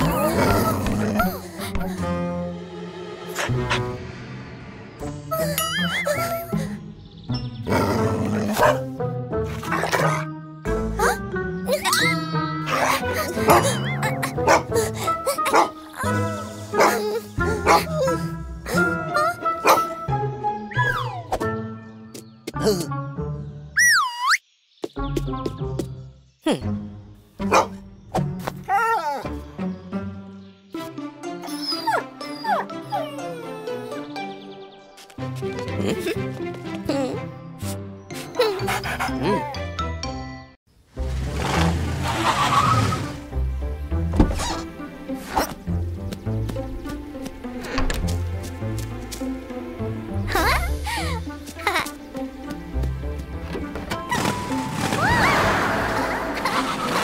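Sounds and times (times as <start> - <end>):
cartoon dog barking and yipping: 11.7 - 18.3, 19.2 - 20.0, 20.7 - 21.3, 23.8 - 24.4, 27.5 - 27.8, 31.6 - 34.1.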